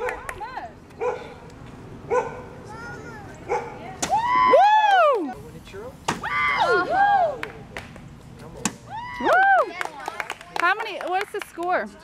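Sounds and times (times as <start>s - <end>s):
dog yipping: 2.1s - 2.5s, 3.5s - 3.8s.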